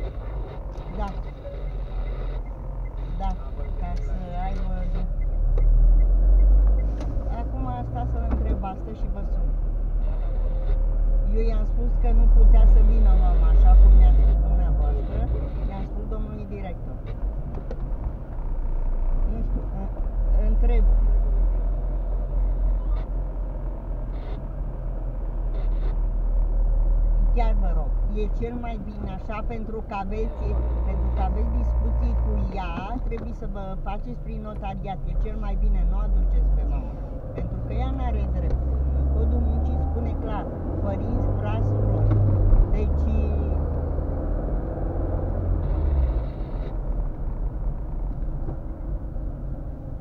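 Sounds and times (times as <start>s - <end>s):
car engine rumble: 0.0s - 50.0s
road noise: 0.0s - 50.0s.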